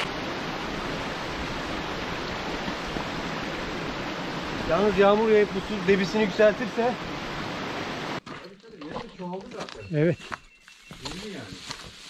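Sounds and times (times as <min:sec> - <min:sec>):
stream rushing over stones: 0:00.0 - 0:08.2.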